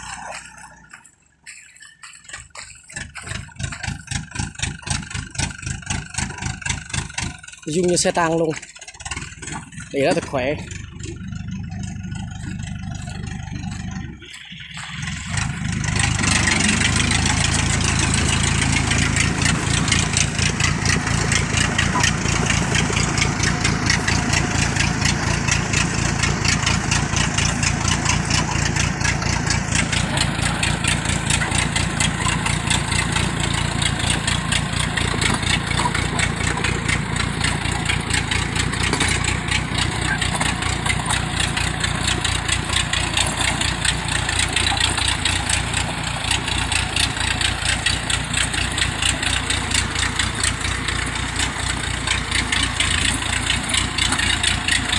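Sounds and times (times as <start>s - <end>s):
cart engine running: 0.0s - 54.9s.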